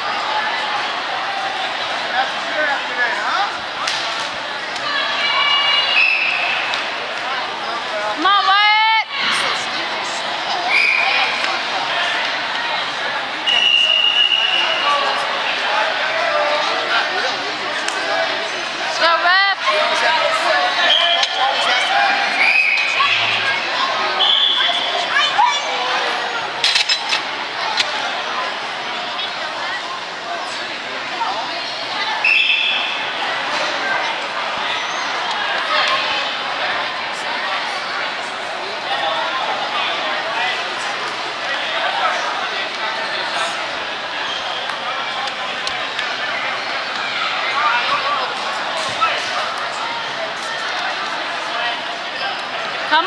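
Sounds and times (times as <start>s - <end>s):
crowd chatter echoing in a gym: 0.0s - 53.0s
referee's whistle: 5.8s - 6.7s, 10.7s - 11.3s, 13.4s - 15.0s, 20.8s - 21.4s, 22.3s - 23.2s, 24.2s - 25.0s, 32.2s - 33.0s.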